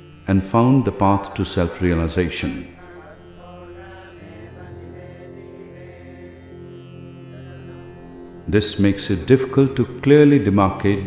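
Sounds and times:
soft music with held notes: 0.0s - 11.0s
steady low drone: 0.0s - 11.0s.

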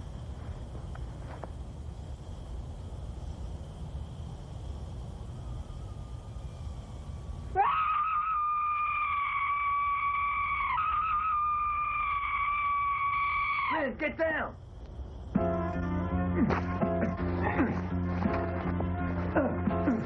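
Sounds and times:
low steady rumble: 0.0s - 7.6s, 14.0s - 20.0s
woman screaming: 7.6s - 13.8s.

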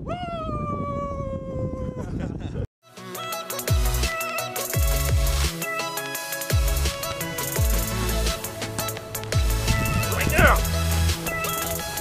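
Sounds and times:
wind rumble on microphone: 0.0s - 2.7s, 9.2s - 12.0s.

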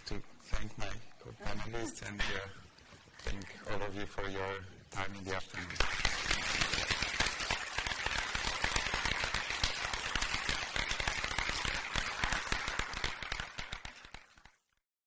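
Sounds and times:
audience applauding: 5.5s - 14.6s.

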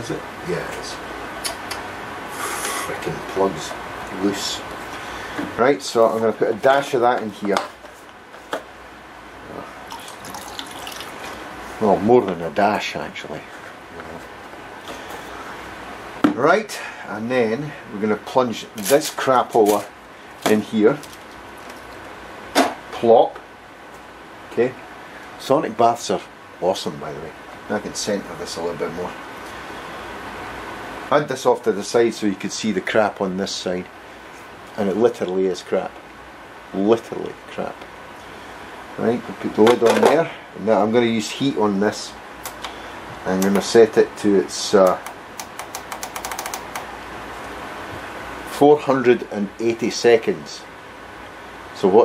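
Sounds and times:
steady background hiss: 0.0s - 52.0s.

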